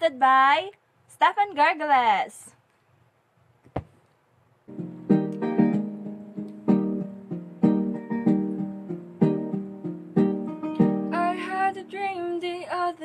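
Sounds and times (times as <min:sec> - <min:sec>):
acoustic guitar chords: 0:04.7 - 0:13.0.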